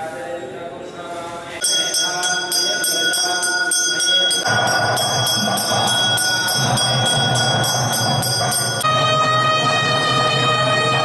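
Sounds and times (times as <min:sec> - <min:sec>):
temple bells ringing: 0:01.6 - 0:11.0.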